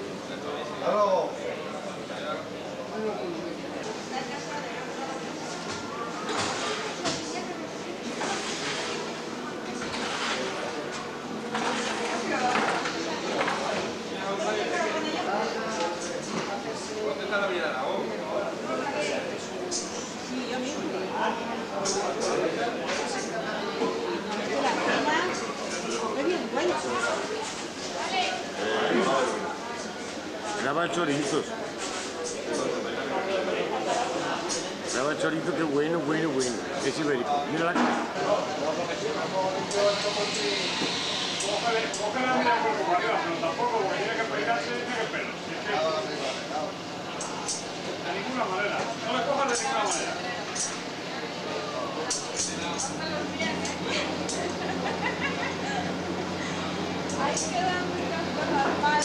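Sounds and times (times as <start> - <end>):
background hubbub: 0.0 - 59.0
crowd chatter: 0.0 - 59.0
people talking: 0.0 - 59.0.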